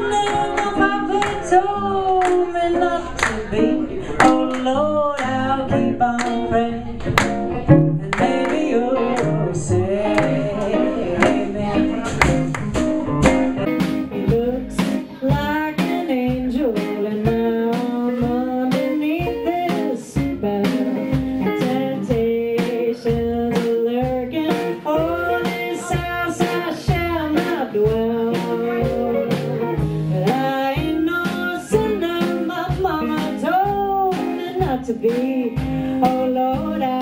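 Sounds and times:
woman singing: 0.0s - 7.2s, 8.1s - 12.0s, 13.8s - 37.0s
live band playing: 0.0s - 37.0s
steady drum beat: 11.2s - 37.0s.

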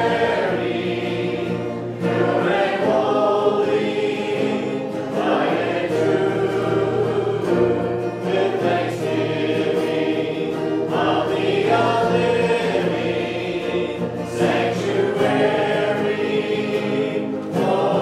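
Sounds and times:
acoustic guitar: 0.0s - 18.0s
congregation singing a hymn: 0.0s - 18.0s
keyboard: 0.0s - 18.0s.

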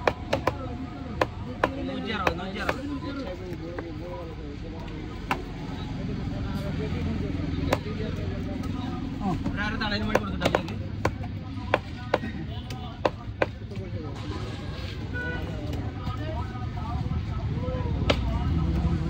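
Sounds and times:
knife chopping on wooden block: 0.0s - 2.8s
street traffic: 0.0s - 19.0s
voices: 0.0s - 19.0s.

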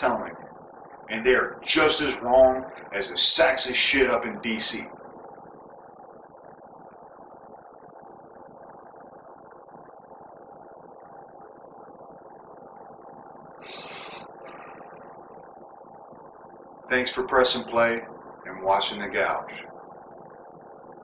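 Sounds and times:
low mechanical hum: 0.0s - 21.0s
brief hiss: 13.6s - 14.2s.

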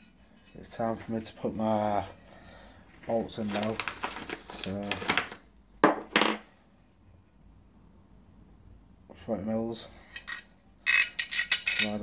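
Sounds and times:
metallic clinks of steel bracket: 10.2s - 12.0s.

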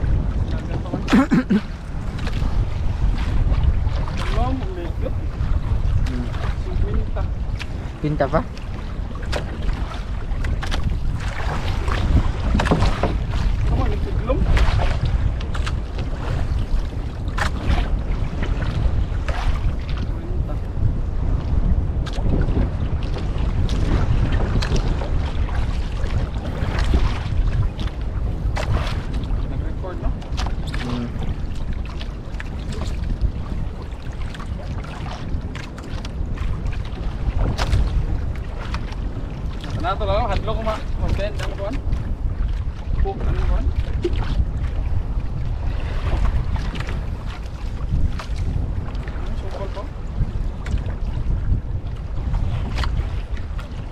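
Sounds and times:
water splashing against hull: 0.0s - 53.9s
wind buffeting microphone: 0.0s - 53.9s.

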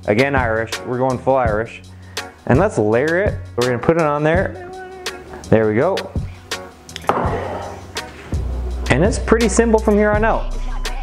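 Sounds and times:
background music: 0.0s - 11.0s
sharp knocks: 7.0s - 7.6s
glass bottle set down on countertop: 7.1s - 7.7s.

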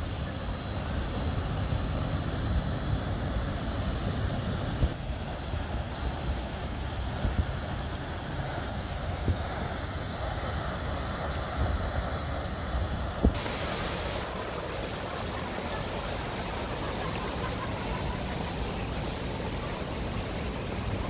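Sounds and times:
fountain water splashing: 0.0s - 21.0s.

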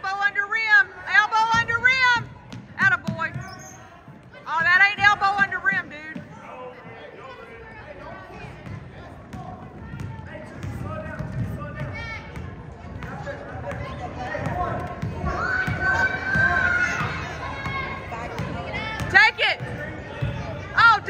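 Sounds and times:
spectators chattering: 0.0s - 21.0s.

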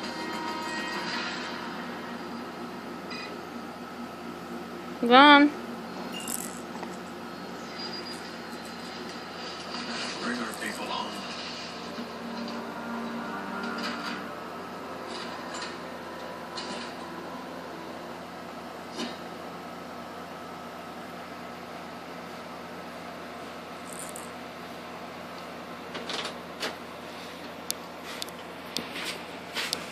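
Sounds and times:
room hum: 0.0s - 29.9s.

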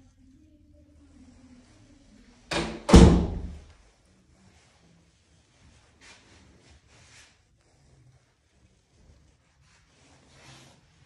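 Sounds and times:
door slamming shut: 2.5s - 3.6s.

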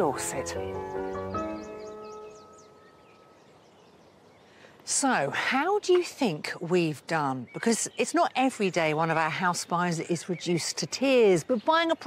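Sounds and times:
background music chord: 0.0s - 3.4s
bird chirps: 0.0s - 4.8s
faint outdoor ambience: 0.0s - 12.0s.

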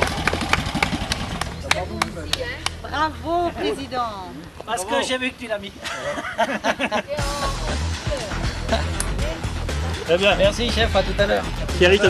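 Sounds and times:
hand claps: 0.0s - 2.8s.

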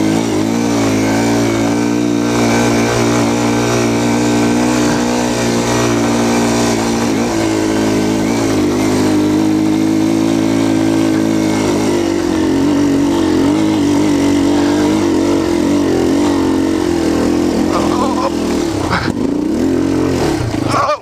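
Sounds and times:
motorcycle engine under load: 0.0s - 21.0s.

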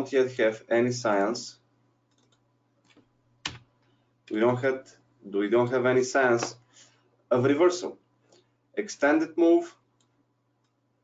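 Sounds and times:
computer keyboard clicks: 2.1s - 3.6s.

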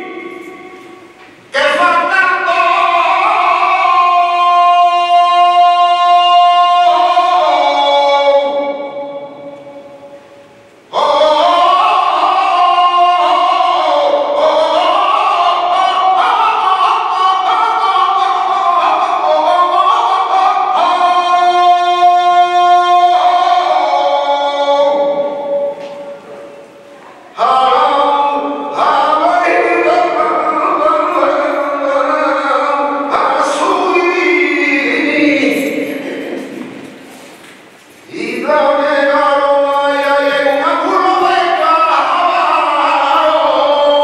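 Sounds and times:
person singing unaccompanied: 0.0s - 26.4s, 27.0s - 36.8s, 38.1s - 44.0s.

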